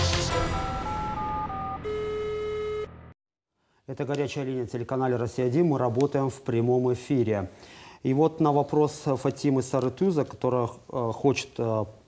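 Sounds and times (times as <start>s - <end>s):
electronic telephone-style jingle: 0.3s - 3.0s.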